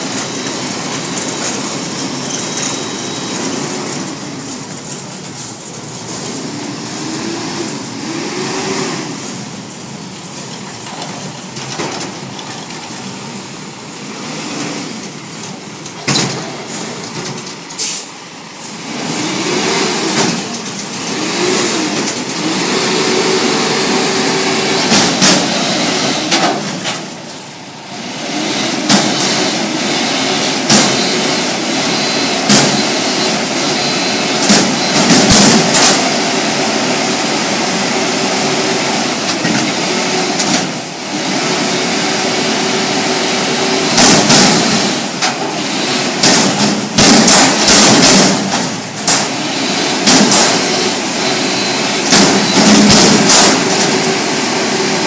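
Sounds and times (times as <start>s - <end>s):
diesel truck engine revving: 5.8s - 10.0s, 16.4s - 55.0s
metal container bangs and clanks: 34.4s - 36.1s, 43.9s - 49.4s, 50.0s - 50.7s, 52.1s - 54.0s.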